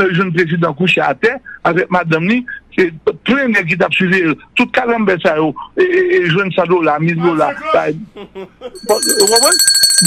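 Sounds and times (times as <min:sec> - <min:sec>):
man speaking: 0:00.0 - 0:08.1, 0:08.8 - 0:09.6
telephone ringer trilling: 0:08.8 - 0:10.0.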